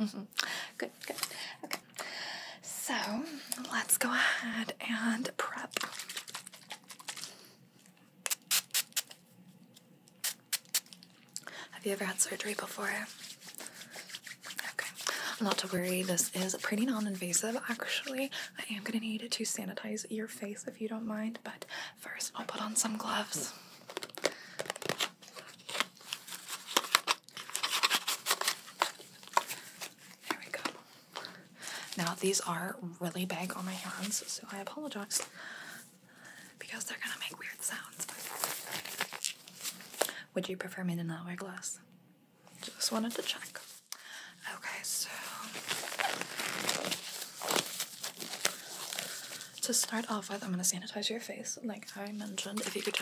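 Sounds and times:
rubber gloves rustling and snapping: 5.7s - 11.4s, 23.8s - 32.0s, 38.0s - 40.1s, 45.4s - 49.7s, 52.2s - 53.0s
glove box crinkling rustles: 23.9s - 30.0s.

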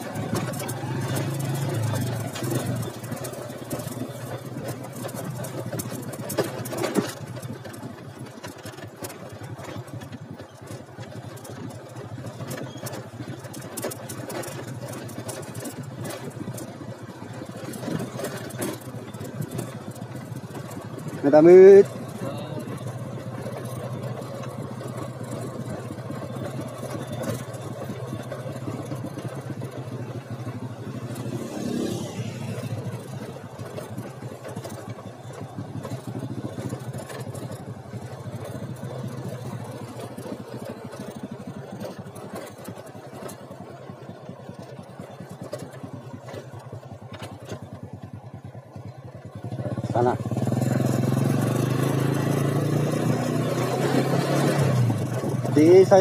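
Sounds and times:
motorcycle engine running: 0.0s - 56.0s.

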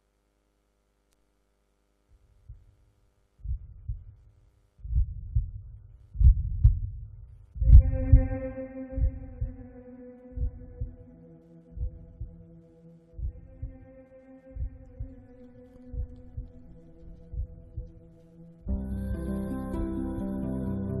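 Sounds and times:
heartbeat thumps: 2.2s - 2.8s, 3.4s - 9.8s, 10.4s - 12.5s, 13.1s - 13.9s, 14.5s - 18.8s.

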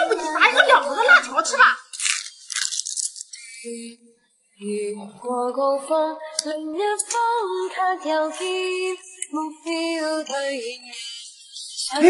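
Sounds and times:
plastic snack packet tearing: 1.8s - 3.5s.

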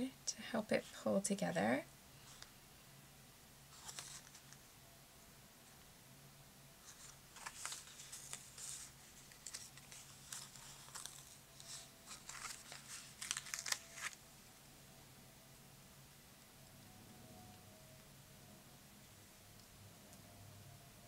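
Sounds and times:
paper sticker sheet crinkling: 3.7s - 4.6s, 6.8s - 14.2s.

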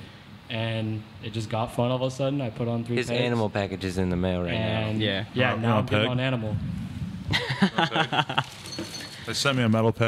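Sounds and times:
man laughing: 7.3s - 8.6s.

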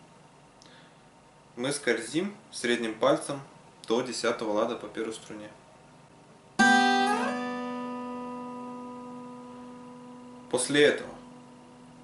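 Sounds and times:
acoustic guitar notes sliding: 6.6s - 12.0s.

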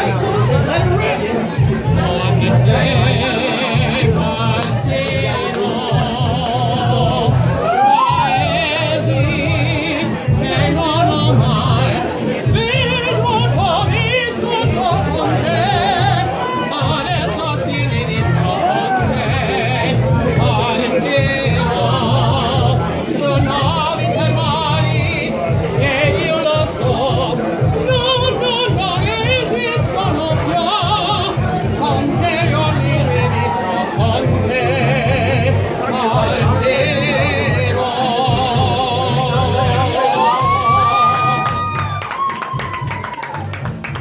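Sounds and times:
man singing with vibrato: 0.0s - 41.9s
music with pulsing low beat: 0.0s - 42.0s.

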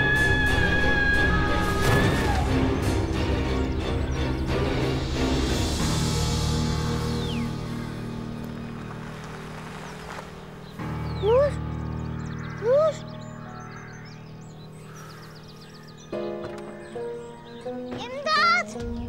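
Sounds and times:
dramatic sustained score: 0.0s - 16.1s.

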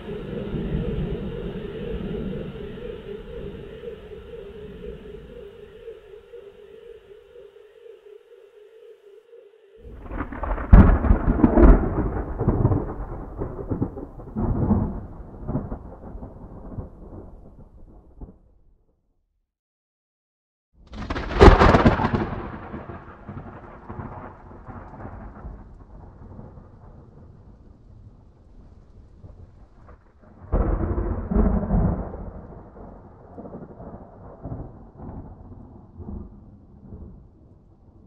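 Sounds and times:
thunder rolling: 0.0s - 18.4s, 21.0s - 38.0s.

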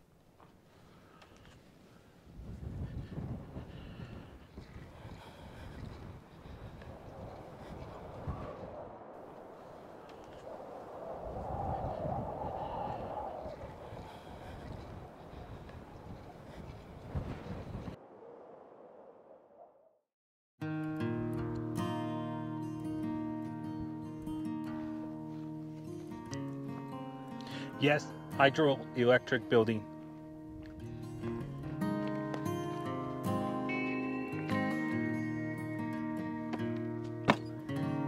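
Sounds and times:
wind buffeting microphone: 2.2s - 19.4s.

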